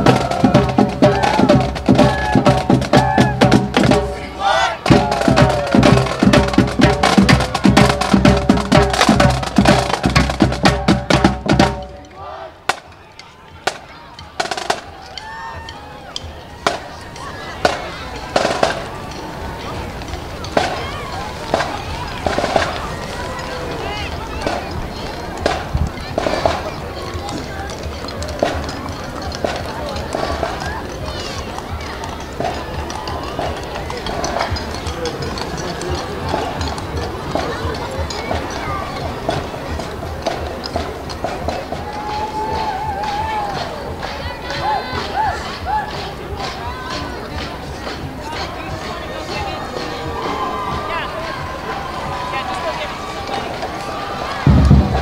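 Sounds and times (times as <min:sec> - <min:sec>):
crowd murmuring: 0:00.0 - 0:55.0
marching band playing: 0:00.0 - 0:55.0.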